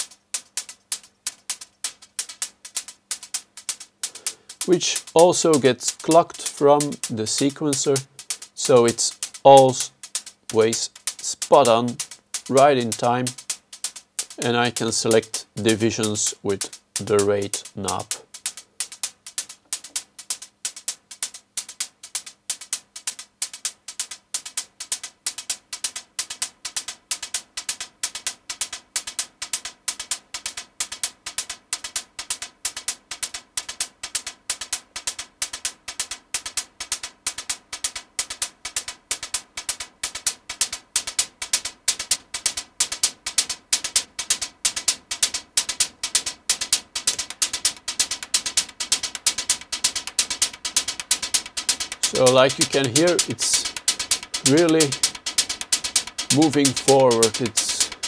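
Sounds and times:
synthesized hi-hat loop with echoes: 0.0 - 58.0.

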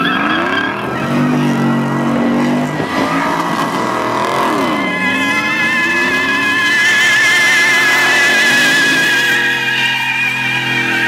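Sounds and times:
car engine revving: 0.0 - 11.0
tyres squealing on asphalt: 0.0 - 11.0.

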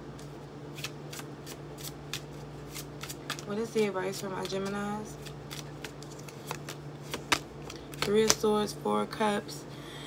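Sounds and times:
cards being shuffled: 0.1 - 8.5.

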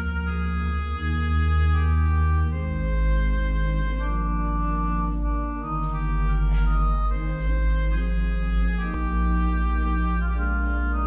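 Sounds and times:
organ playing sustained chords: 0.0 - 11.0.

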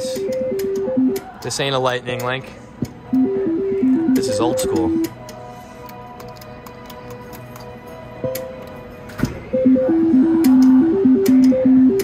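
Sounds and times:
electronic melody of stepping beeps: 0.0 - 1.3, 3.1 - 5.1, 9.5 - 12.0.

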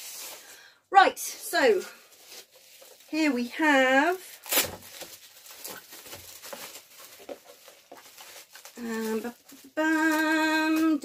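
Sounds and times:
bubble wrap crackling: 0.0 - 0.7, 1.3 - 11.0.

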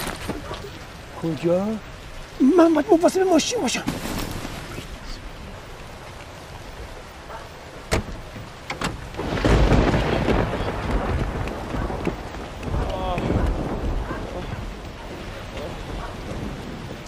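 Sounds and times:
steady rain: 0.0 - 17.0
rolling thunder: 8.9 - 17.0.

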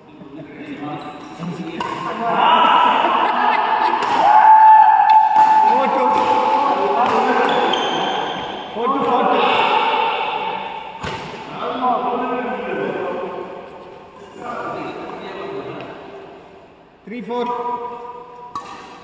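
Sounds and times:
drawn-out voices in echoing hall: 0.0 - 19.0
racket striking shuttlecock: 1.8 - 2.2, 4.0 - 4.2, 5.0 - 7.6, 18.4 - 19.0.

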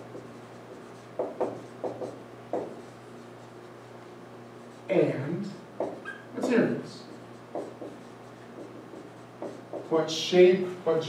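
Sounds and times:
marker writing on whiteboard: 0.0 - 4.9, 5.8 - 10.1
man speaking: 6.4 - 7.1, 9.9 - 11.0.

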